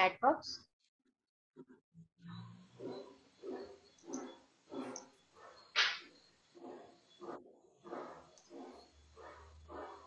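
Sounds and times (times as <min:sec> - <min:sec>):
dog barking: 0:06.6 - 0:10.0.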